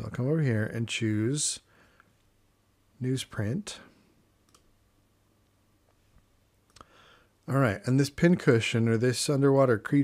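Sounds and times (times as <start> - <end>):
computer mouse click: 4.4 - 4.7.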